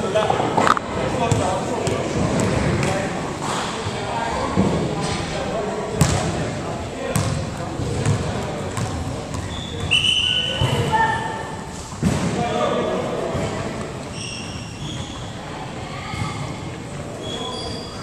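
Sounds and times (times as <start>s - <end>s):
voices talking in echoing gym: 0.0s - 18.0s
basketball thuds: 6.0s - 6.3s, 7.1s - 9.5s
sneaker squeaks: 8.8s - 11.4s, 14.0s - 18.0s.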